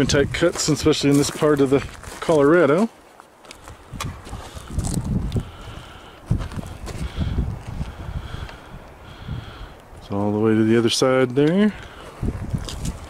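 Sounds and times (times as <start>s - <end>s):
footsteps on gravel: 0.0s - 8.7s, 10.0s - 13.0s.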